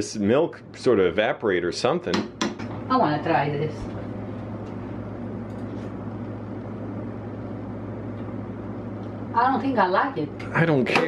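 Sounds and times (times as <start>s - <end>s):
fan motor humming with hiss: 0.0s - 11.0s.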